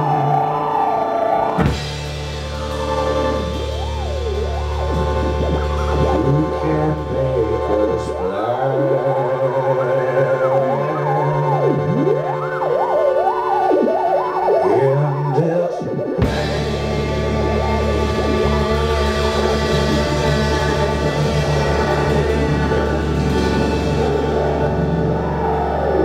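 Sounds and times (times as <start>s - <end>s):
low bass drone: 0.0s - 26.0s
siren-like electronic pitch glides: 0.0s - 26.0s
sustained steady tones: 0.0s - 26.0s.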